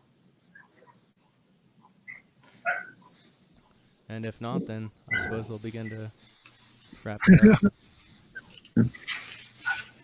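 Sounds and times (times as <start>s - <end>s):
dog barking: 1.8s - 3.2s.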